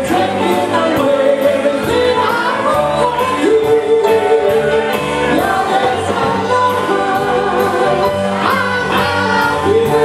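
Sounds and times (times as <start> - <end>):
drums: 0.0 - 10.0
electric guitar: 0.0 - 10.0
upright bass: 0.0 - 10.0
voices singing together: 0.0 - 10.0.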